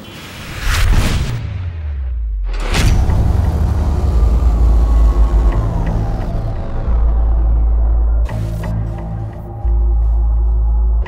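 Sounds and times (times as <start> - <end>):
cinematic music: 0.6 - 11.0
deep rumble: 0.8 - 11.0.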